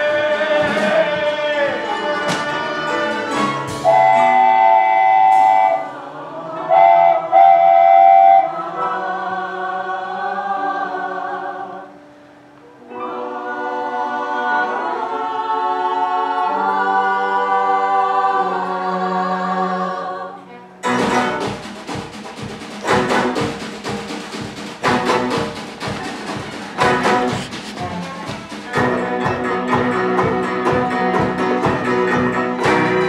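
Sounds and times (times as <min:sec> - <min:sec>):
live band accompaniment: 0:00.0 - 0:08.5, 0:20.8 - 0:33.0.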